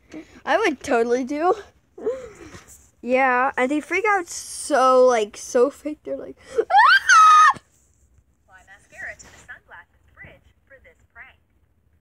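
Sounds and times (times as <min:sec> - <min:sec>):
girl's shrill mock scream: 0:06.6 - 0:07.6.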